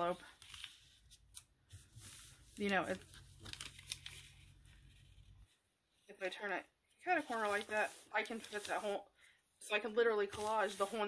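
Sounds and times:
tissue paper rustling: 0.0 - 5.6, 7.0 - 9.0, 9.8 - 11.0.

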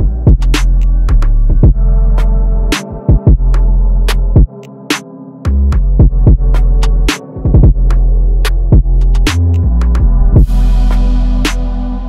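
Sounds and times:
deep bass: 0.0 - 4.5, 5.5 - 12.0
hi-hat and snare hits: 8.5 - 12.0.

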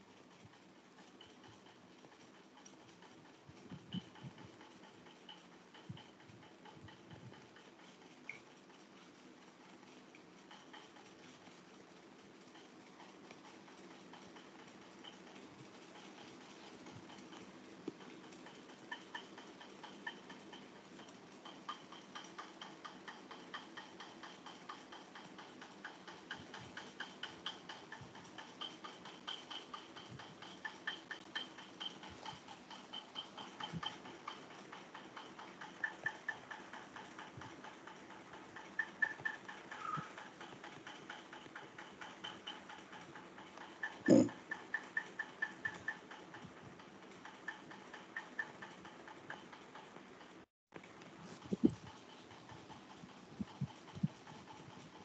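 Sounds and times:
rapid light ticking: 0.0 - 55.0.

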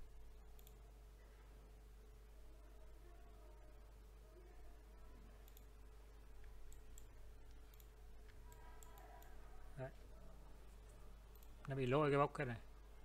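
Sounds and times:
computer mouse clicks: 0.5 - 0.8, 5.4 - 5.8, 6.4 - 9.4, 10.8 - 11.8.

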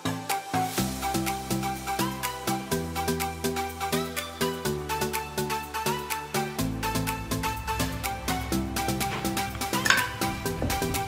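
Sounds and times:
background music with beat: 0.0 - 11.0
metallic clink: 9.8 - 10.4.

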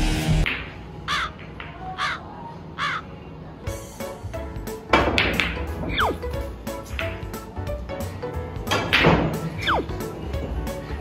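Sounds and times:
crow cawing: 1.1 - 3.1.

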